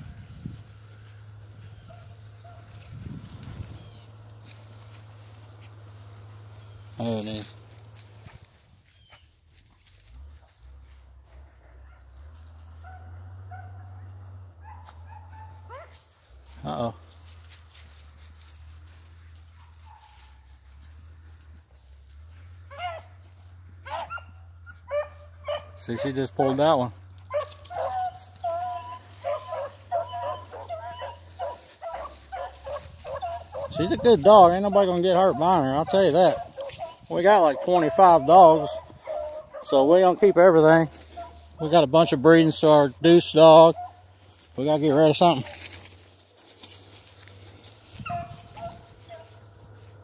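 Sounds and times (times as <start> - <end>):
low steady rumble: 0.0 - 25.8
hounds baying faintly: 0.0 - 50.0
dog barking: 1.8 - 2.8, 11.6 - 12.2, 12.8 - 16.0, 19.5 - 20.4, 22.7 - 23.2, 23.8 - 34.0, 34.7 - 39.9, 41.0 - 41.5, 43.7 - 44.0, 48.0 - 49.4.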